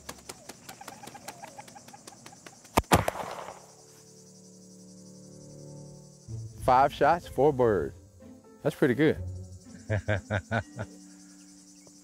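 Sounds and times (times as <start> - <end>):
shotgun report with echo: 2.8 - 3.7.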